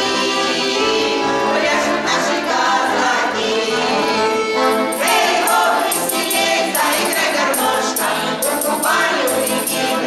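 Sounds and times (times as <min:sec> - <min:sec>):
women singing together: 0:00.0 - 0:04.2, 0:04.9 - 0:10.0
accordion: 0:00.0 - 0:10.0
jingling percussion: 0:04.5 - 0:10.0.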